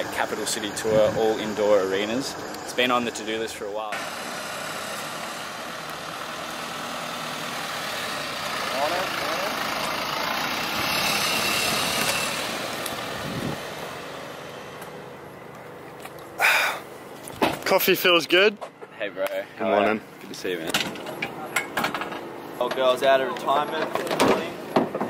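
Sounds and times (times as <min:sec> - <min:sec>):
pickup truck driving past: 0:04.0 - 0:15.8.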